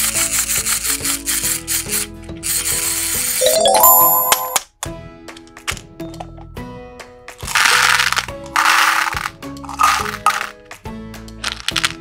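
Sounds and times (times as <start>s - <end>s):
background music: 0.0s - 12.0s
candy rattling into plastic tub: 7.4s - 10.6s, 11.4s - 12.0s.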